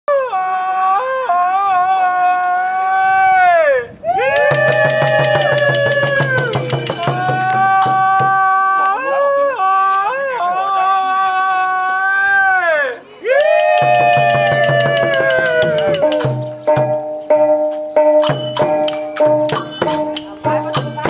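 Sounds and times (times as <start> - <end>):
men's drawn-out calls: 0.3 - 16.6
long drum beating: 4.2 - 8.6, 13.6 - 21.0
small hand cymbals: 4.6 - 8.1, 13.7 - 17.1, 18.2 - 21.0.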